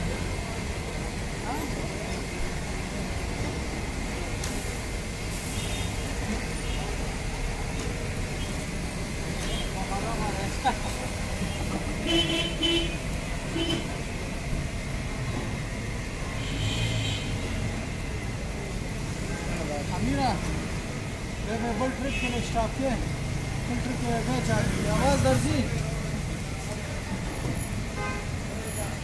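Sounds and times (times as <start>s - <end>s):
street traffic engine rumble: 0.0s - 29.0s
vehicle horn toots: 11.6s - 13.0s, 16.4s - 17.6s, 28.0s - 28.3s.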